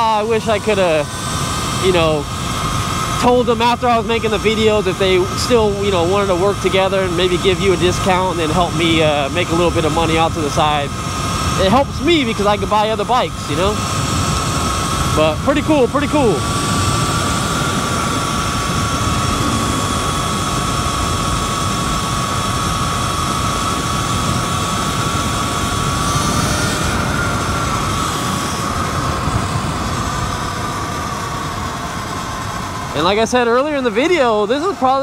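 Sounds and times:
electric motor whine: 0.0 - 33.2.

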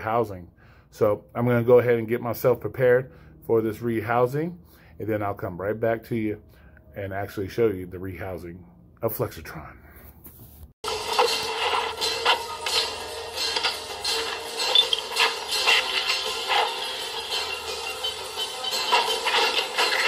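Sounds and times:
action film music from tv speaker: 10.8 - 20.0
metallic clicks and clanks: 10.8 - 20.0.

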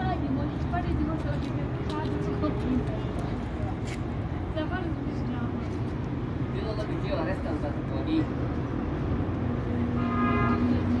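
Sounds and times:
long steady horn note: 9.8 - 11.0.

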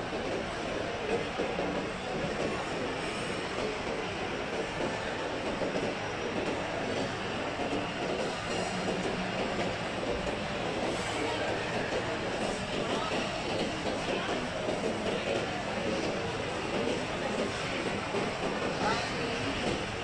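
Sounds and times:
reverberant mall hubbub: 0.0 - 20.0.

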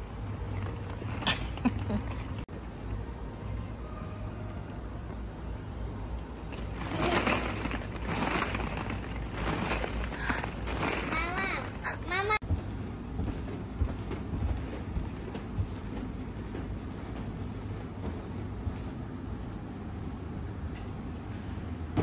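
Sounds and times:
plastic balls rustling and clattering: 0.0 - 2.8, 6.4 - 12.4.

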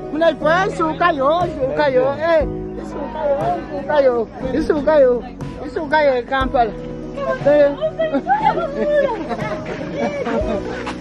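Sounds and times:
group of people chattering excitedly: 0.0 - 11.0.

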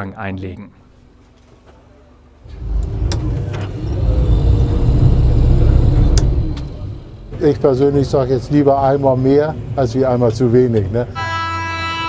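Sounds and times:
boat engine rumble: 2.4 - 9.2.

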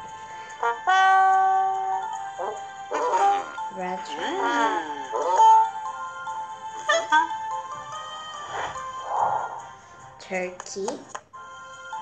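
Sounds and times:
background music with held tones: 0.0 - 12.0.

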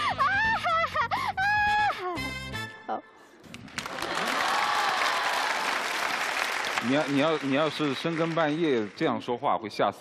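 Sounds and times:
studio audience applauding: 3.5 - 9.4.

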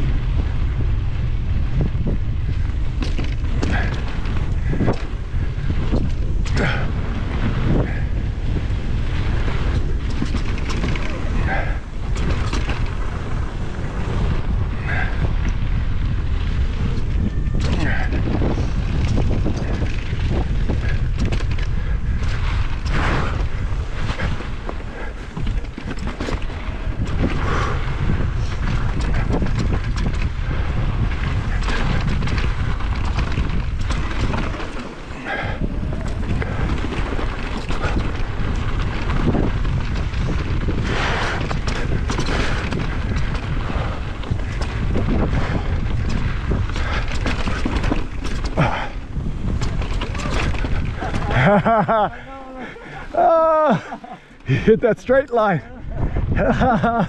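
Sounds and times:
tyres rolling over dirt and rock: 0.0 - 55.6, 56.2 - 57.0
bike knocking and rattling: 0.0 - 57.0
wind buffeting microphone: 0.0 - 57.0.

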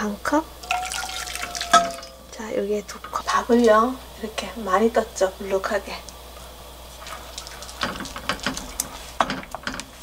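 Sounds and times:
wooden spoon knocking metal pot: 0.7 - 2.2.

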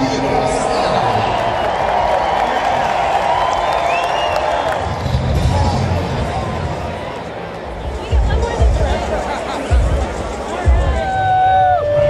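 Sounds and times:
stadium crowd cheering and applauding: 0.0 - 12.0.

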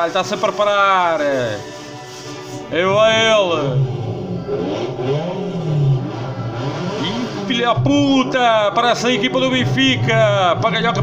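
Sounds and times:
car engine revving: 0.2 - 11.0.

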